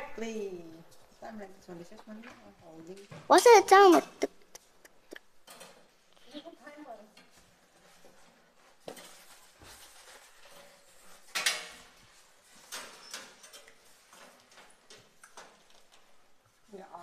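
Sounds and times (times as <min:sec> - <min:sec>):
wire rack sliding and knocking: 0:07.2 - 0:15.7.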